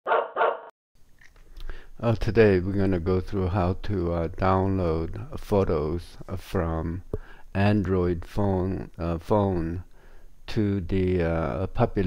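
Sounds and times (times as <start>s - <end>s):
dog barking: 0.1s - 0.7s
faint room noise: 1.0s - 12.0s.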